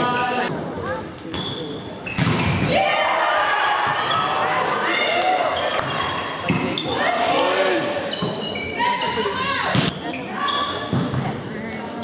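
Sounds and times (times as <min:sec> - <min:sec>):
players calling and shouting: 0:00.0 - 0:11.5.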